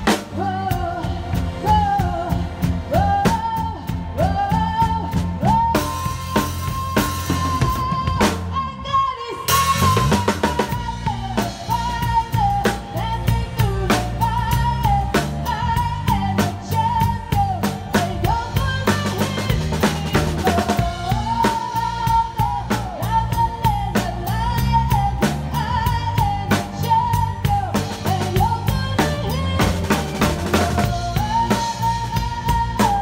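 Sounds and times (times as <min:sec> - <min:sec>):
drum kit played with sticks: 0:00.0 - 0:33.0
recorded song with bass: 0:00.0 - 0:33.0.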